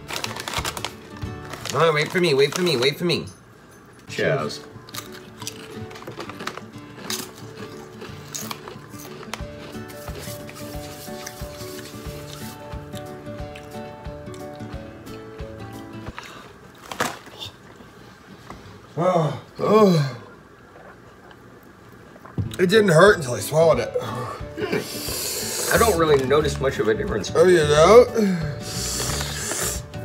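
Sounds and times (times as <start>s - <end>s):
chewing tortilla chips: 0.0s - 3.0s, 4.6s - 14.8s, 28.6s - 30.0s
background music of held notes: 4.2s - 16.2s, 23.2s - 30.0s.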